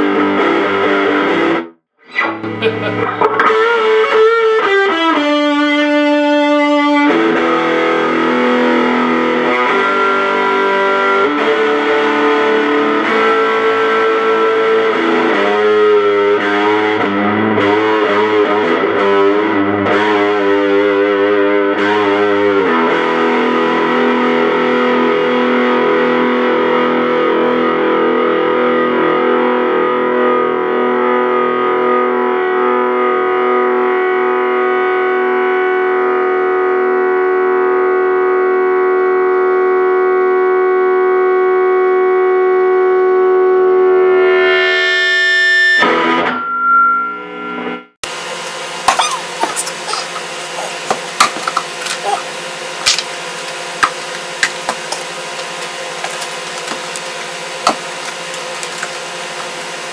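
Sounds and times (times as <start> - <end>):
distorted electric guitar chords: 0.0 - 59.9.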